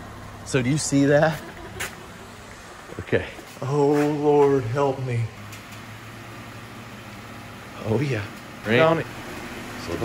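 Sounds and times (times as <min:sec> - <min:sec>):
car engine running low hum: 0:00.0 - 0:10.0.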